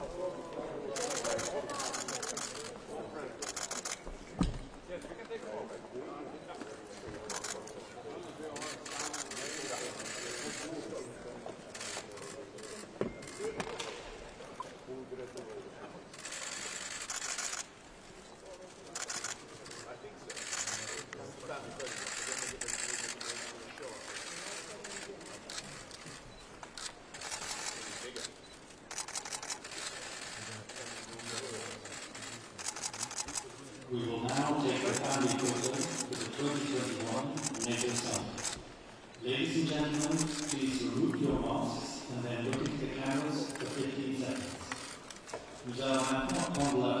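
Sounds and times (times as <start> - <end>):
murmur of voices in a hall: 0.0 - 47.0
rapid camera shutter clicking: 0.9 - 2.8, 3.4 - 4.0, 7.2 - 7.8, 8.5 - 10.8, 16.2 - 17.8, 18.8 - 21.2, 21.8 - 33.6, 34.3 - 38.6, 39.8 - 40.8, 42.6 - 46.8.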